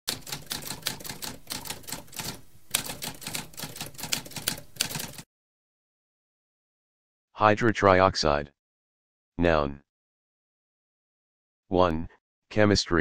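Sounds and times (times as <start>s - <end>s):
typewriter keys clacking: 0.1s - 5.2s.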